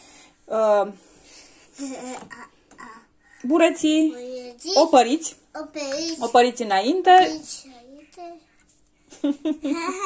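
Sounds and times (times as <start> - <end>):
people talking: 3.4 - 8.4.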